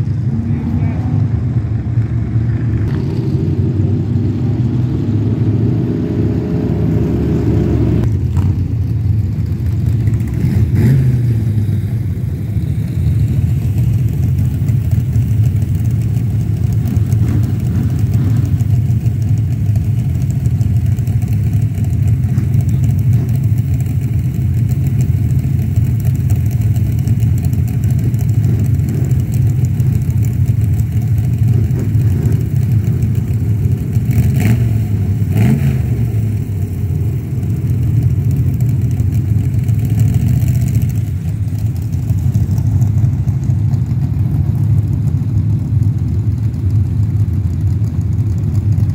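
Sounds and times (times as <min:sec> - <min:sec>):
stock cars racing: 0:00.0 - 0:12.2.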